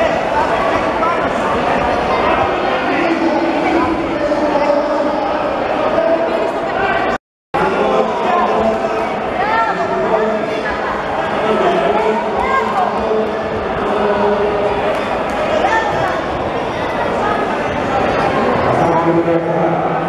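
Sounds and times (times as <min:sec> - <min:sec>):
crowd shouting and talking: 0:00.0 - 0:20.0.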